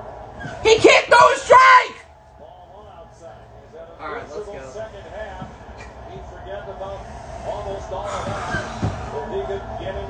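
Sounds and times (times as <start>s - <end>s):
indistinct talking: 0.4s - 10.0s.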